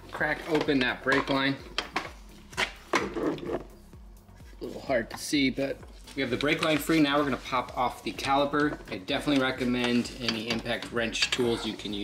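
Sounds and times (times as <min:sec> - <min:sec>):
rubbing handling noise: 0:00.0 - 0:12.0
wrench metal clicks and knocks: 0:09.2 - 0:11.4.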